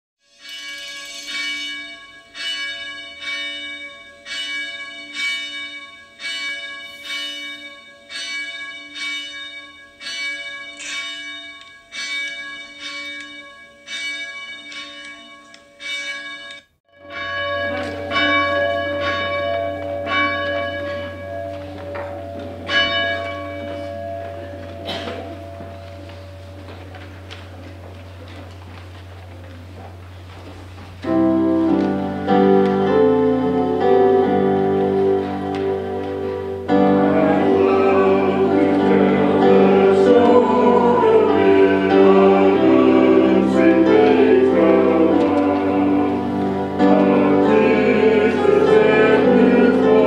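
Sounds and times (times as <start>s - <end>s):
church bells ringing: 0.2s - 28.8s, 30.9s - 50.0s.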